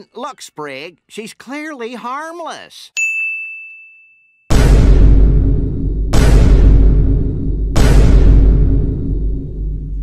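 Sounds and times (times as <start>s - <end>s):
bright bell-like ding: 3.0s - 4.5s.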